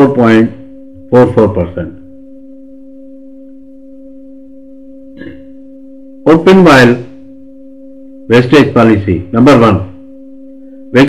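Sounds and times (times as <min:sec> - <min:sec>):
steady electronic hum: 0:00.0 - 0:11.0.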